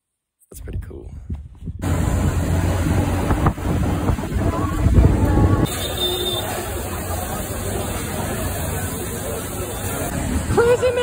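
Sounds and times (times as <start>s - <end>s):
road and wind noise from vehicle: 0.8s - 11.0s.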